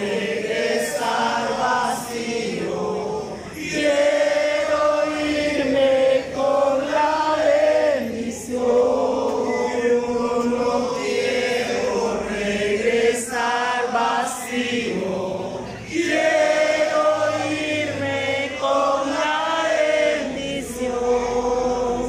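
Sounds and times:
congregation singing: 0.0s - 22.0s.

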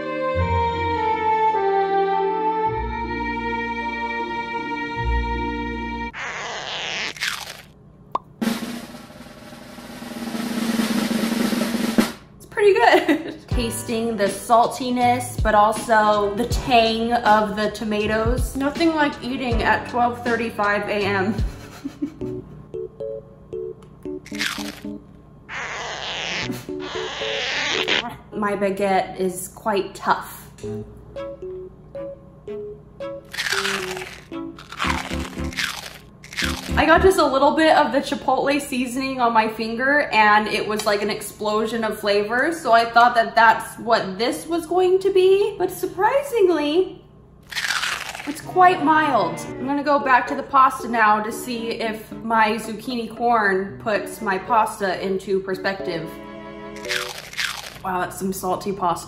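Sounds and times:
crunching of chewed food: 7.1s - 7.7s, 24.3s - 24.9s, 33.3s - 36.8s, 47.4s - 48.4s, 56.8s - 57.8s
snare drum roll: 8.4s - 12.3s
soft music with plucked notes: 30.6s - 35.6s, 36.4s - 37.3s, 48.4s - 57.0s.

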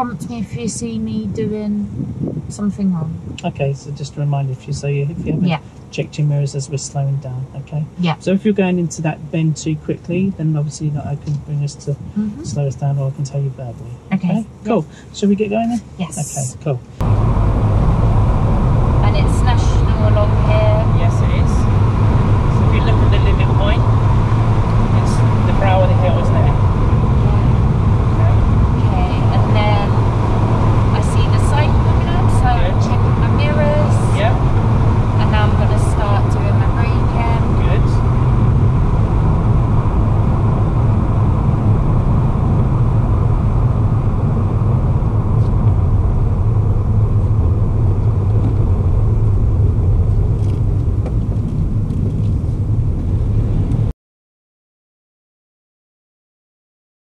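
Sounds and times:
car road and engine noise: 0.0s - 53.9s.

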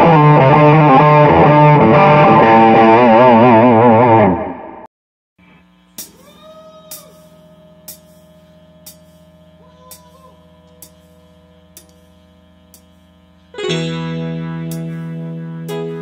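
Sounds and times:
amplifier electric hum: 5.4s - 16.0s.

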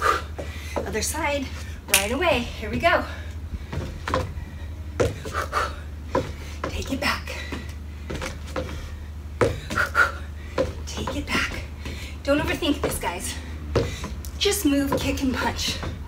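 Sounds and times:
woman breathing quickly: 0.0s - 1.9s, 2.5s - 10.9s, 11.5s - 14.4s
low steady hum: 0.0s - 16.0s.

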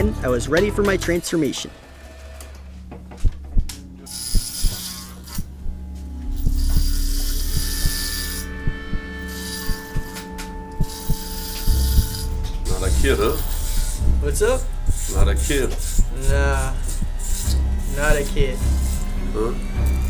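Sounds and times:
clipper blades clicking: 3.6s - 5.8s
electric hair clippers buzzing: 3.6s - 20.0s.

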